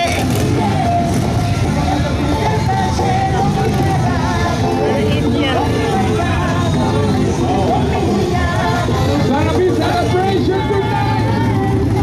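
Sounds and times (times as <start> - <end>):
crowd voices: 0.0 - 12.0
motorcycle engines idling: 0.0 - 12.0.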